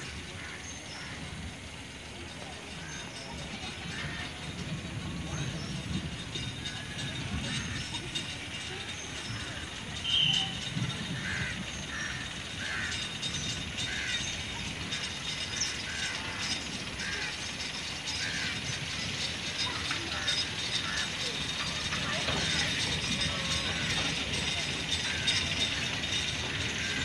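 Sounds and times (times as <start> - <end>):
rapid ratchet-like clicking: 0.0 - 27.0.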